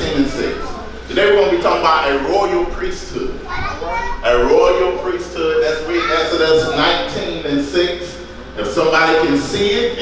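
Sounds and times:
man talking into a microphone: 0:00.0 - 0:03.4, 0:04.2 - 0:10.0.

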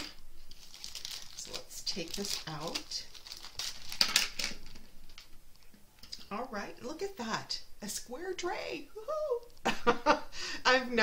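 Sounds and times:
plastic bag crinkling: 0:00.0 - 0:06.1.

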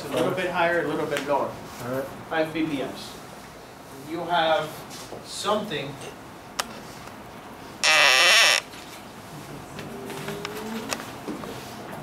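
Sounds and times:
marker squeaking on whiteboard: 0:07.8 - 0:08.7.

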